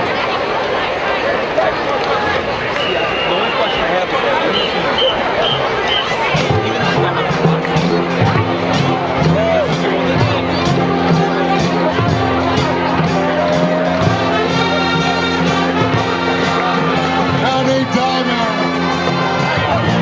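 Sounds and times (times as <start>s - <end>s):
crowd chatter: 0.0s - 20.0s
marching band playing: 2.7s - 20.0s.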